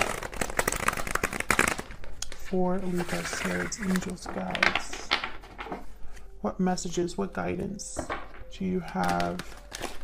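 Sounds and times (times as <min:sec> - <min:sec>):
cards being shuffled: 0:00.0 - 0:06.3, 0:08.9 - 0:10.0.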